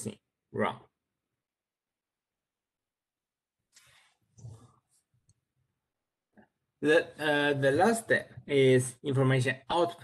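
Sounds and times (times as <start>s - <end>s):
person speaking: 6.8s - 10.0s.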